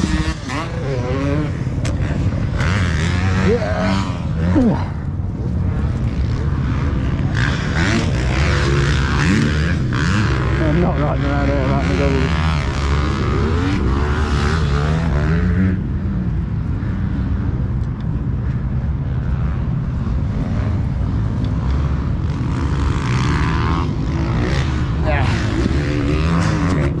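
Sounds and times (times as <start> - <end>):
dirt bike engines revving: 0.0 - 27.0
wind rumbling on microphone: 0.0 - 27.0.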